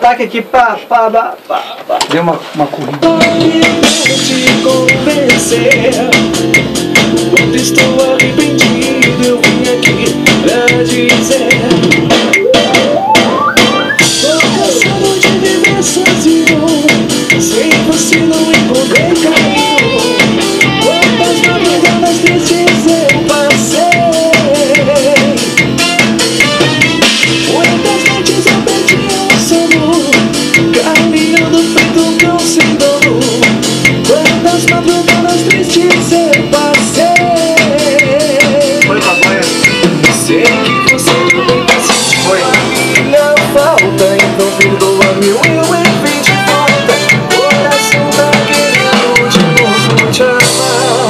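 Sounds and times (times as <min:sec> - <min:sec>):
band song playback: 0:00.0 - 0:51.0
drum kit with cymbals: 0:02.9 - 0:51.0.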